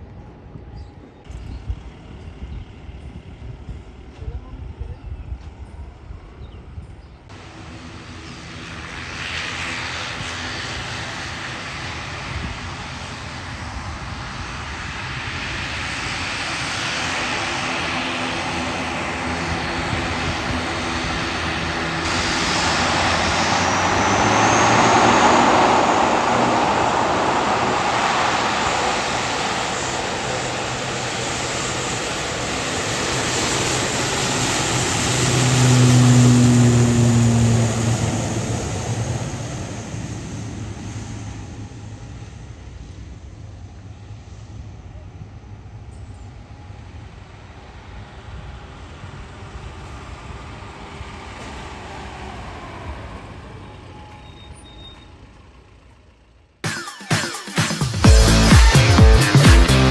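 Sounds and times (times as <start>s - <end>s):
propeller drone: 0.0s - 59.9s
turbine whine: 0.0s - 59.9s.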